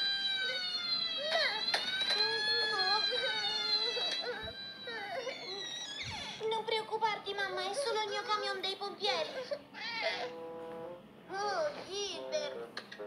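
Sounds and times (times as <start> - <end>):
toy fire truck siren wailing: 0.0 - 6.0.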